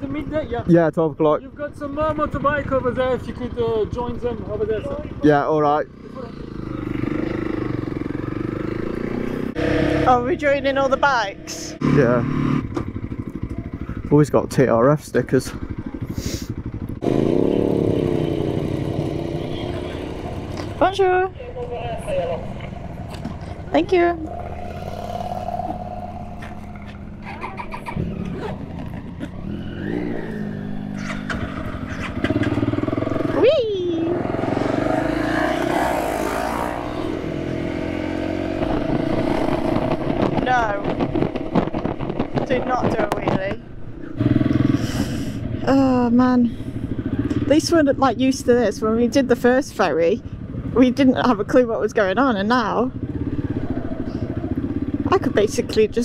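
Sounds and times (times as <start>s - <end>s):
motorcycle engine idling and accelerating: 0.0s - 56.0s.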